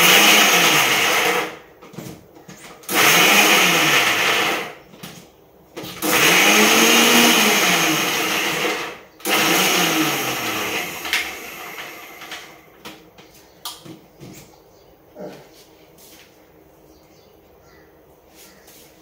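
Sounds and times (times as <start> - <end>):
electric mixer grinder motor: 0.0 - 1.6, 2.9 - 4.8, 5.8 - 12.8.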